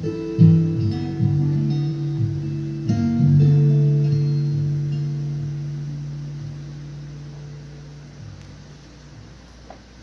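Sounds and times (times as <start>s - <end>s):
acoustic guitar chord ringing: 0.0s - 9.3s.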